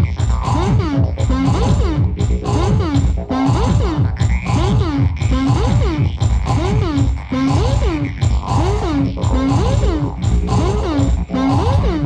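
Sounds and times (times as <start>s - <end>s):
pulsing low bass line: 0.0s - 12.0s
swooping synthesizer tone: 0.0s - 12.0s.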